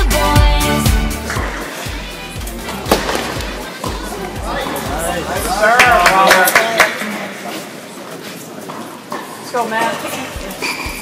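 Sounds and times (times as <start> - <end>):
background music: 0.0 - 6.3
racket hitting tennis ball: 2.8 - 4.8.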